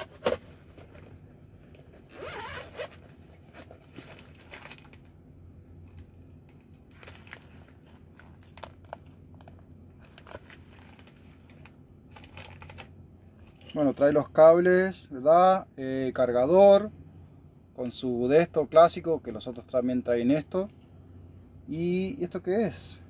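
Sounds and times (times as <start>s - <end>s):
zipper pulled open: 1.8s - 4.7s.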